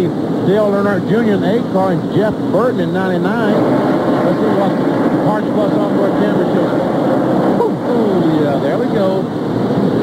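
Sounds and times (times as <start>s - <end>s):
race car engines droning: 0.0s - 10.0s.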